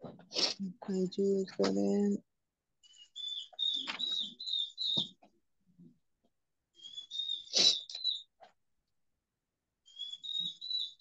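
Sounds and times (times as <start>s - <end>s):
bird chirping: 2.8s - 5.9s, 6.7s - 8.4s, 9.8s - 11.0s.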